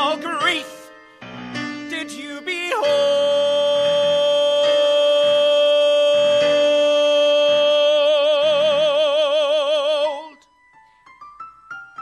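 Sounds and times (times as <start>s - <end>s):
piano accompaniment: 0.0s - 12.0s
man singing a long high note: 1.8s - 10.4s.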